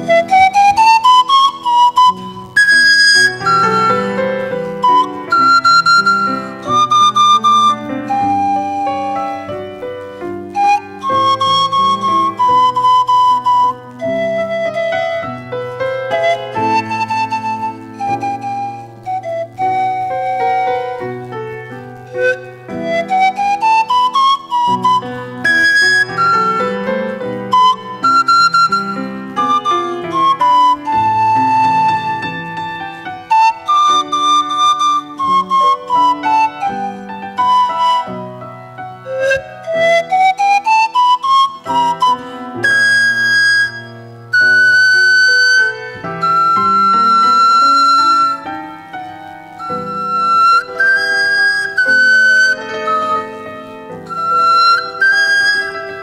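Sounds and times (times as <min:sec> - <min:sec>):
grand piano: 0:00.0 - 0:56.0
pan flute melody: 0:00.0 - 0:56.0.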